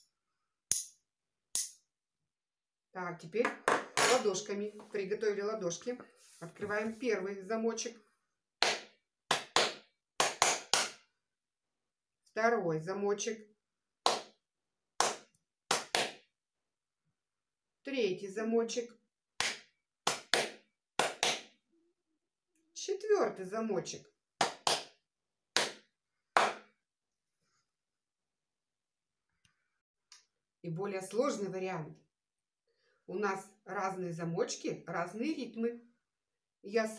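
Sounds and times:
hand claps in a rhythm: 8.6 - 11.0, 14.0 - 14.4, 15.0 - 16.2, 19.4 - 21.6, 24.4 - 25.0, 25.6 - 25.8, 26.4 - 26.7.

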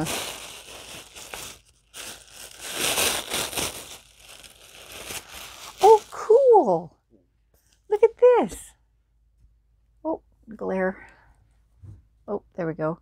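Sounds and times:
tissue paper crinkling: 0.0 - 6.5.

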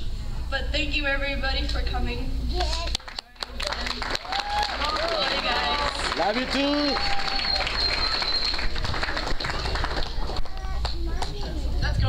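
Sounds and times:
voices: 0.5 - 12.0
audience applauding: 3.0 - 11.0.

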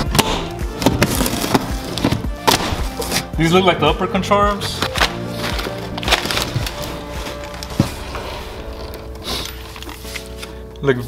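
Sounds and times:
background music: 0.0 - 11.0
paper rustling and crackling: 0.7 - 2.2, 4.6 - 10.7.

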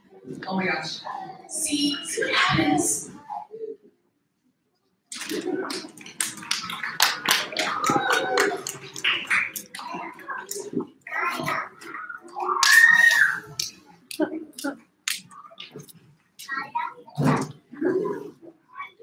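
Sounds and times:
indistinct voices: 0.0 - 3.8, 5.1 - 19.0.

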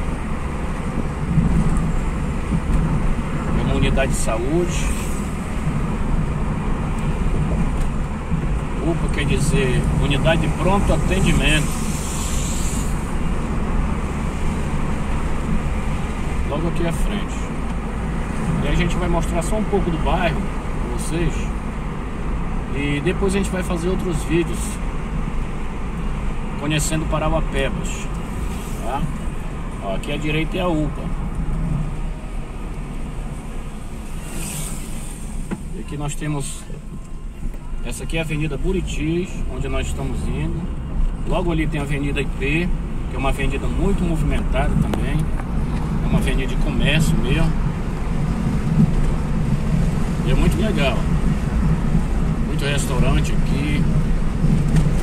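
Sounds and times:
car interior rumble: 0.0 - 55.0
brief high hiss: 34.1 - 35.5.

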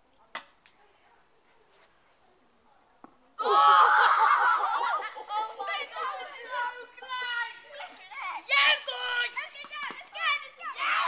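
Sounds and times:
children calling and chattering: 3.4 - 11.0.

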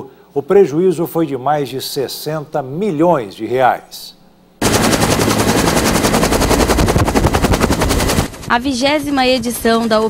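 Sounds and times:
helicopter rotor chopping overhead: 4.6 - 10.0.

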